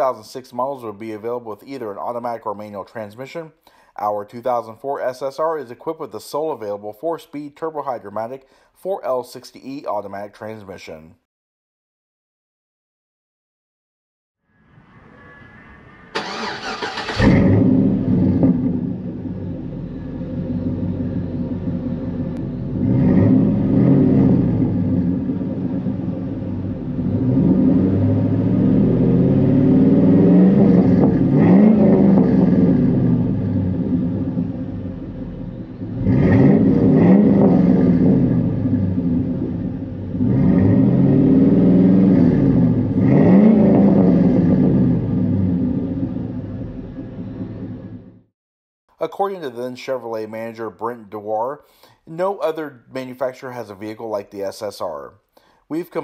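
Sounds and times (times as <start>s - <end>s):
car engine starting and revving: 14.8s - 48.3s.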